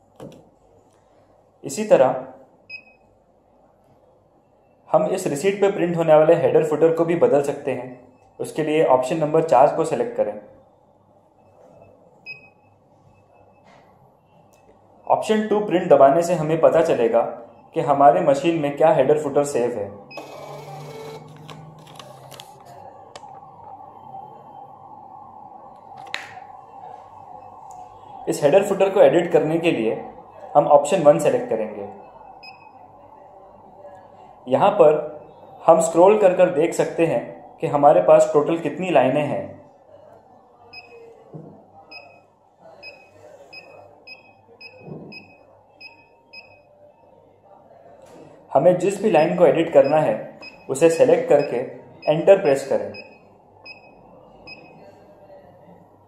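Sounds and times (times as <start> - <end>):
receipt printer feed motor whirring: 20.2 - 22.4.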